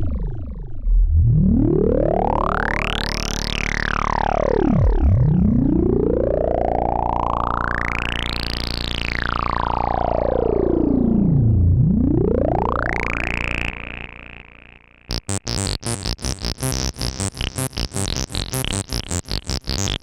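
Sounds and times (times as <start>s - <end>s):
synthesizer bass filter sweep: 0.0s - 20.0s.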